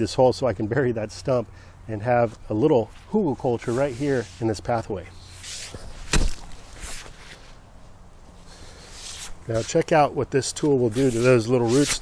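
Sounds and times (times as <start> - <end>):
pickaxe striking hard soil: 6.0 - 7.0.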